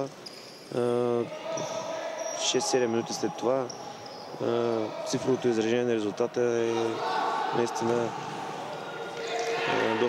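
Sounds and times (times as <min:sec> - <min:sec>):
indoor hall noise: 0:00.0 - 0:10.0.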